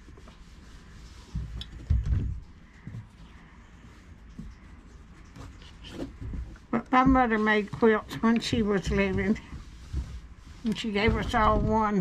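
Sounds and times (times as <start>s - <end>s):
iron thumping on ironing board: 6.2s - 12.0s.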